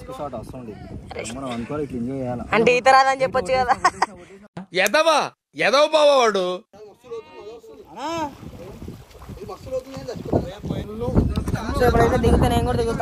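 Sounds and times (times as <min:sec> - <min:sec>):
men talking: 0:00.0 - 0:02.8, 0:03.7 - 0:12.4
wind buffeting microphone: 0:00.0 - 0:04.2, 0:07.5 - 0:13.0.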